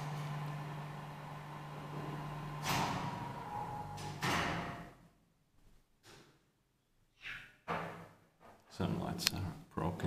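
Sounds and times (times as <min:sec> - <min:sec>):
elevator humming in shaft: 0:00.0 - 0:04.3.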